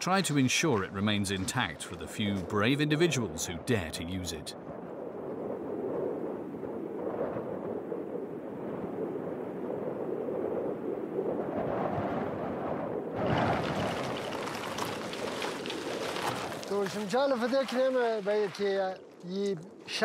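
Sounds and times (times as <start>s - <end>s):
wind rushing past microphone: 0.7s - 16.8s
tyres rolling over gravel: 13.3s - 18.6s.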